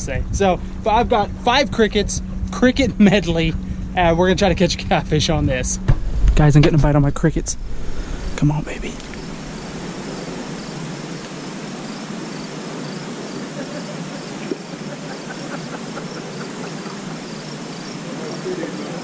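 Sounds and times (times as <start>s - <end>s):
background hiss: 0.0s - 19.0s
crickets chirping: 0.0s - 19.0s.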